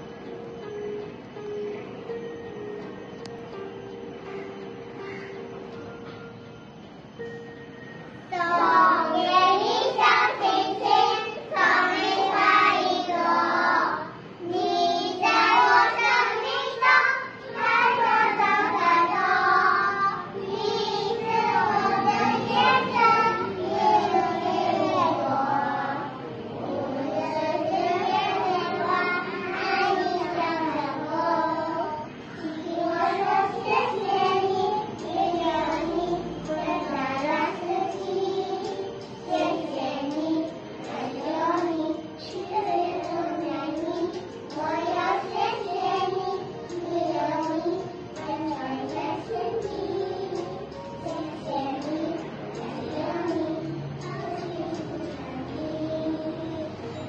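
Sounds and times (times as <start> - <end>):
children singing in unison: 8.3 - 57.0.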